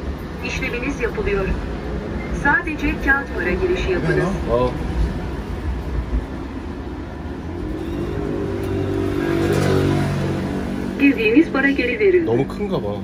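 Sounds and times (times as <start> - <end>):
vehicle engine passing by: 7.3 - 13.0.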